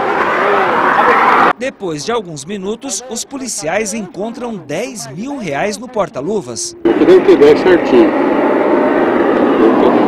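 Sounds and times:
loud steady rushing noise: 2.7s - 10.0s.

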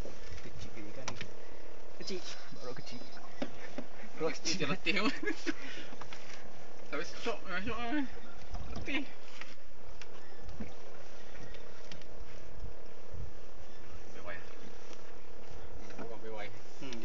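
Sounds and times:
wind: 0.0s - 17.0s.

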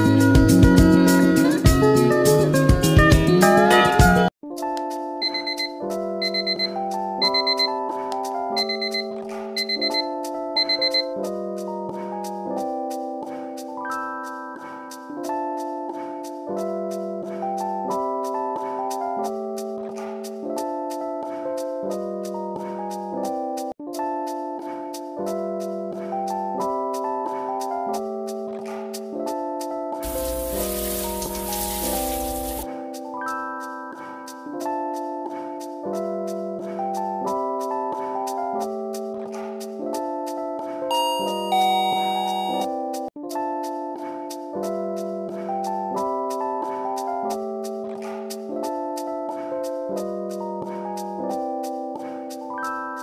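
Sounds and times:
gentle keyboard music: 0.0s - 53.0s
alarm clock beeping: 5.2s - 7.8s, 8.6s - 11.1s, 40.9s - 42.7s
sustained keyboard chords: 30.0s - 32.6s
water spraying: 30.0s - 32.6s.

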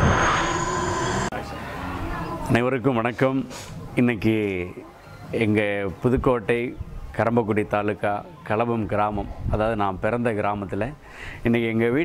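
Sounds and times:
low hum: 0.0s - 1.4s
low rumbling whoosh: 0.0s - 1.4s
thin rising whine: 0.0s - 1.4s.

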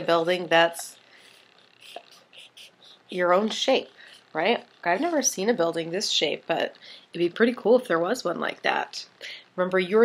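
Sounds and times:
marker scratching on paper: 0.0s - 4.3s.

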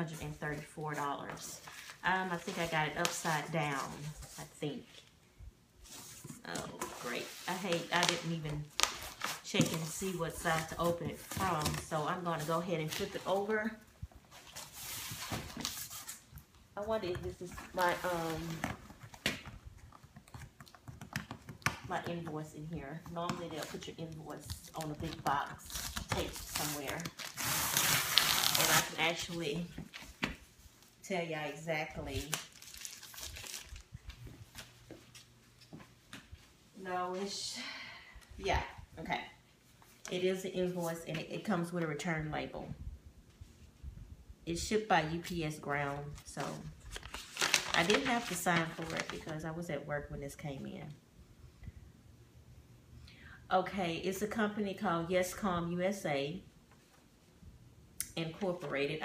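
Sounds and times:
bubble wrap and cardboard rustling: 0.0s - 5.0s, 5.8s - 31.0s, 31.9s - 35.7s, 45.6s - 49.4s.

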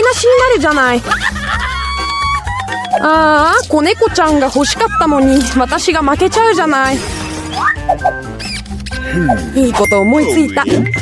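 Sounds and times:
background music with held tones: 0.0s - 11.0s
cartoon squeaks and chirps: 7.1s - 9.4s.

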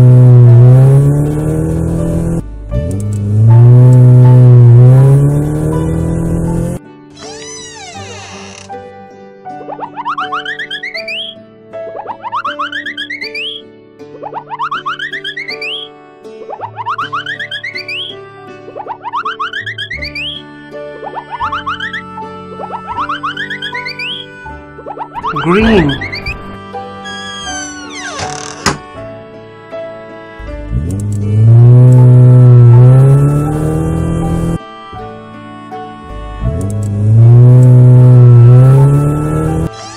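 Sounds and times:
cartoon car engine revving: 0.0s - 6.8s, 25.3s - 26.5s, 30.4s - 34.6s, 36.4s - 39.7s
light background music: 0.2s - 39.9s
children's background music: 9.5s - 27.9s, 39.5s - 39.9s.

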